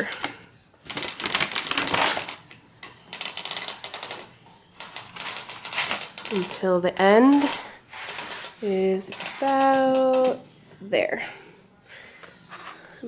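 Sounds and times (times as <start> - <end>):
loom ratchet clicking rapidly: 4.8 - 6.6, 7.2 - 8.3, 9.1 - 10.4.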